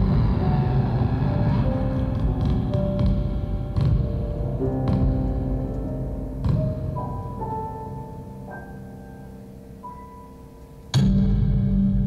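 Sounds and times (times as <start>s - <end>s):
low keyboard drone: 0.0s - 12.0s.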